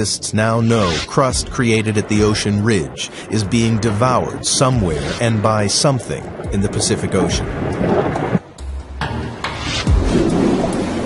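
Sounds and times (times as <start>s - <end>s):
deep thunder-like rumble: 0.6s - 8.4s
low boom: 0.8s - 5.4s.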